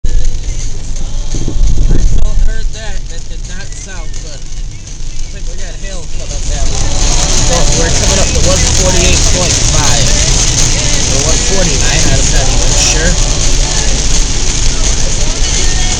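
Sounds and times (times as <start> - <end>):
low road rumble: 0.0 - 15.9
rain and tyre spray hiss: 0.1 - 15.9.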